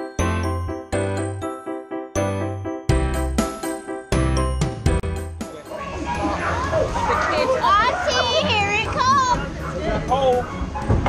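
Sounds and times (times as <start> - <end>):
children shouting and squealing: 5.6 - 10.8.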